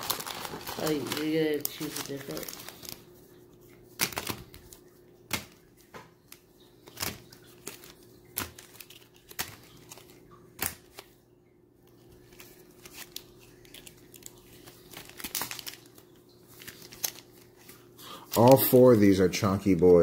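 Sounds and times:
foil wrappers crinkling: 0:00.0 - 0:11.2, 0:11.9 - 0:20.0
faint steady hum: 0:00.0 - 0:20.0.

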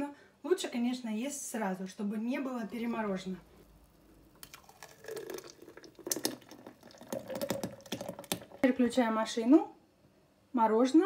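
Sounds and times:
liquid dripping: 0:02.6 - 0:08.8.

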